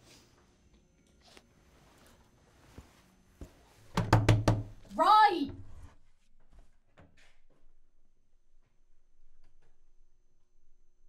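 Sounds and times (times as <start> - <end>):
knocks on wooden door: 3.9 - 4.8
person calling out: 4.9 - 5.6.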